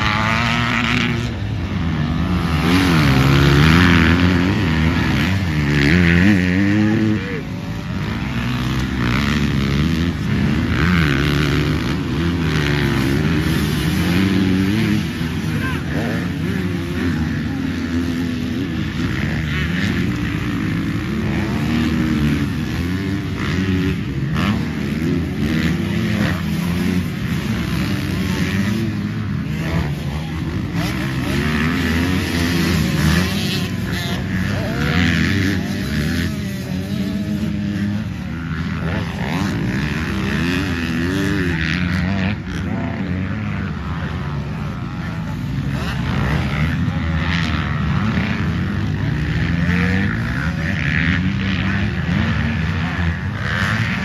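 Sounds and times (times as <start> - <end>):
dirt bike engines racing: 0.0 - 54.0.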